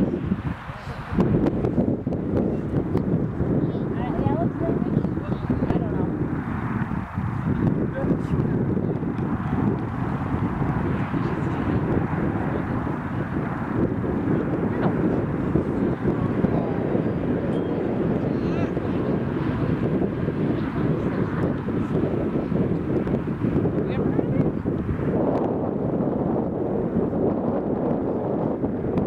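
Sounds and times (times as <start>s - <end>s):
continuous low rumble: 0.0s - 29.0s.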